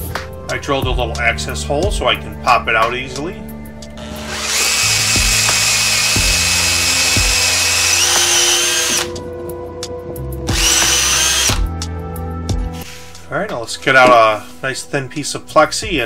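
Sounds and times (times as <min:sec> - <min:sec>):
cordless drill boring into wood: 0:04.0 - 0:09.1, 0:10.5 - 0:11.7.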